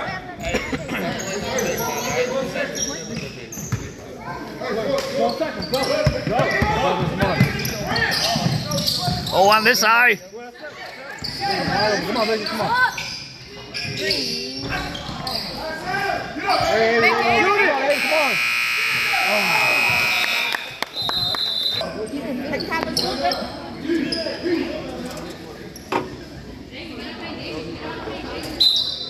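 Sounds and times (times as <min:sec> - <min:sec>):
spectators' voices: 0:00.0 - 0:29.0
scoreboard buzzer: 0:17.9 - 0:20.9
referee's whistle blast: 0:17.9 - 0:21.8.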